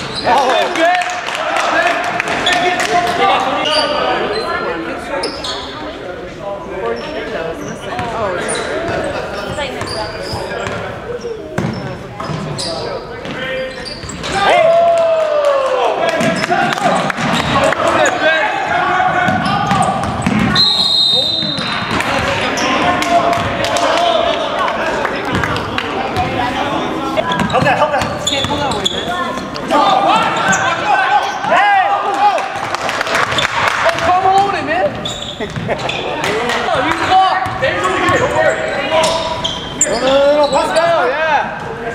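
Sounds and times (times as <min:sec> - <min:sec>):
indistinct shouts and chatter: 0:00.0 - 0:41.9
referee's whistle: 0:20.5 - 0:21.8.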